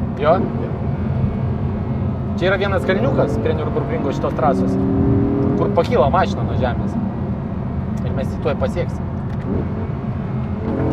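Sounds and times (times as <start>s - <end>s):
car engine droning: 0.0s - 10.9s
road noise: 0.0s - 10.9s.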